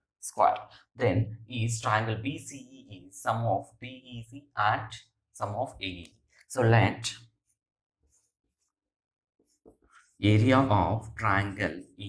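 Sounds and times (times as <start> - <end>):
marker writing on whiteboard: 7.2 - 8.8, 9.4 - 10.7.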